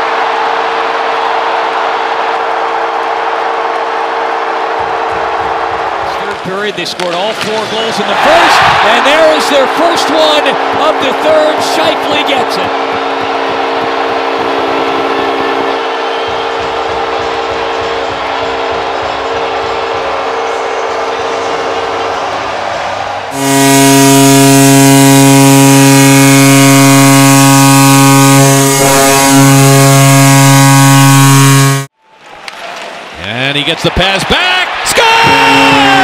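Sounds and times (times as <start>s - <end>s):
arena crowd noise: 0.0s - 29.8s, 32.1s - 36.0s
goal horn blast: 0.1s - 6.4s, 7.0s - 19.9s, 23.3s - 31.9s, 35.2s - 36.0s.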